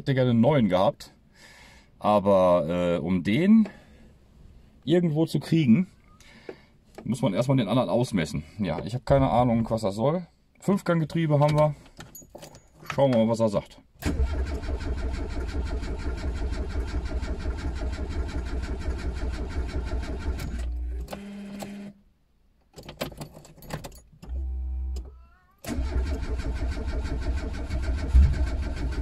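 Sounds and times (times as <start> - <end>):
starter motor cranking engine: 14.0 - 21.2, 25.7 - 29.0.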